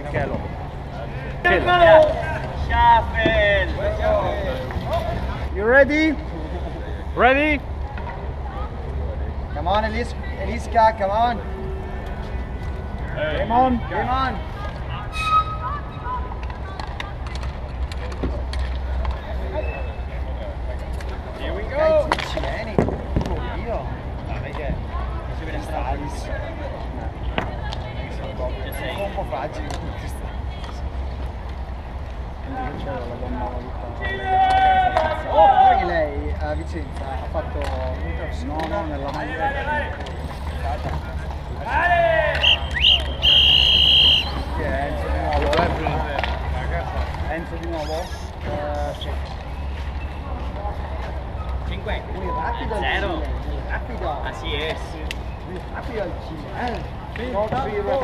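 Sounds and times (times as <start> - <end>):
high-pitched whistle: 15.1 - 16.0, 42.4 - 44.5
faint shouting of players: 34.0 - 36.1, 41.6 - 44.6.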